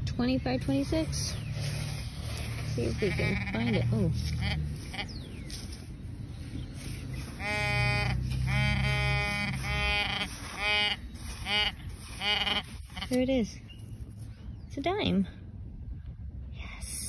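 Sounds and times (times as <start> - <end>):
probe in sand: 0.5 - 14.3
metal detector beeping and buzzing: 0.8 - 5.9, 6.8 - 13.3.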